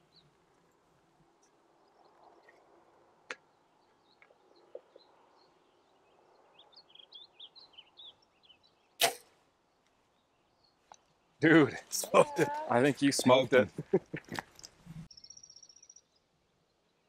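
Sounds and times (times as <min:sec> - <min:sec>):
birds chirping: 0:00.0 - 0:17.0
bow string crack: 0:09.0 - 0:09.4.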